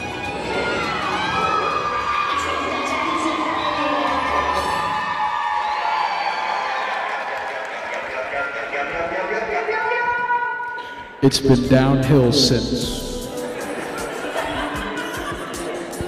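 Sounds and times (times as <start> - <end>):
high-pitched screams: 0.0 - 7.0
crowd cheering and shouting: 0.0 - 16.0.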